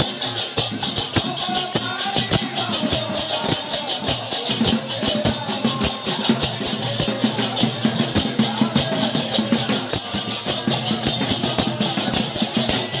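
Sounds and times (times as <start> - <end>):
brass hand cymbals clashing: 0.0 - 13.0
percussion: 0.0 - 13.0.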